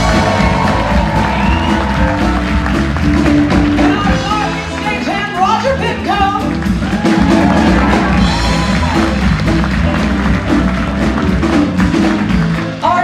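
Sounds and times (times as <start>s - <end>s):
drum kit beat: 0.0s - 13.0s
electric bass line: 0.0s - 13.0s
guitar: 0.0s - 13.0s.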